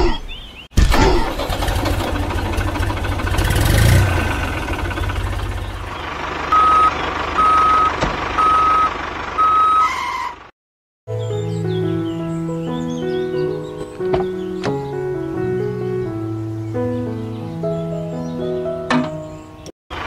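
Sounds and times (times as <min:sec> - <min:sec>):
diesel engine chugging: 0:00.8 - 0:10.5
reversing alarm beeps: 0:06.5 - 0:10.4.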